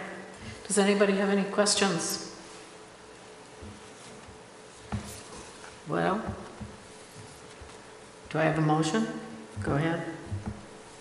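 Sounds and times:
faint electrical hum: 0.0s - 11.0s
person speaking: 5.0s - 6.8s, 8.2s - 10.7s.

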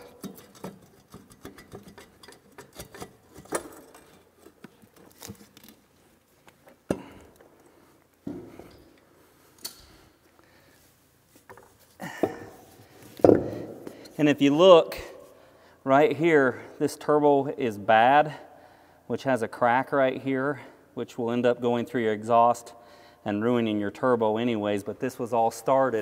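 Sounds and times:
wrenches and metal parts clinking: 0.0s - 5.8s.

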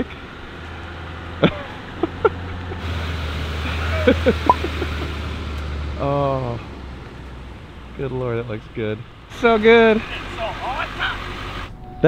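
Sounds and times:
diesel truck engine droning: 0.0s - 12.0s.

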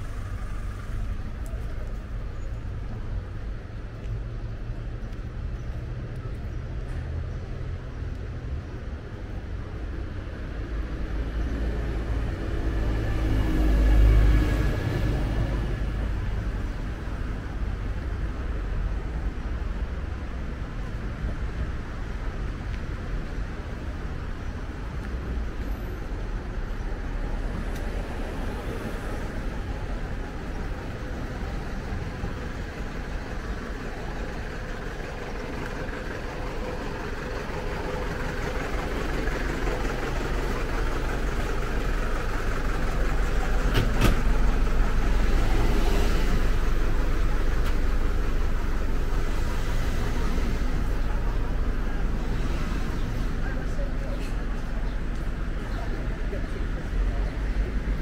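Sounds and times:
road traffic rumble: 0.0s - 58.0s.

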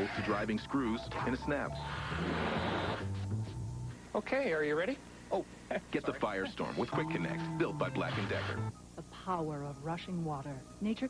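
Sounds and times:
music: 0.0s - 4.0s, 6.6s - 11.0s
low steady hum: 3.0s - 11.0s.

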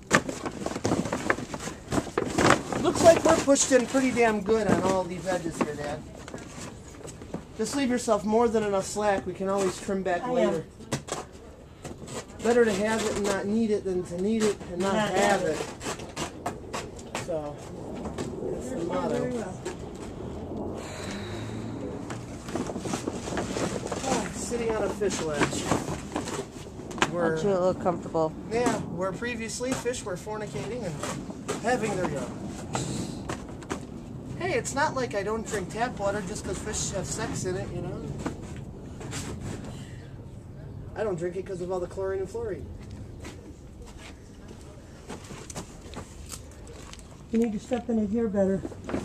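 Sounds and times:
plastic liner crinkling underfoot: 0.0s - 8.1s
low rumble: 16.4s - 25.0s.

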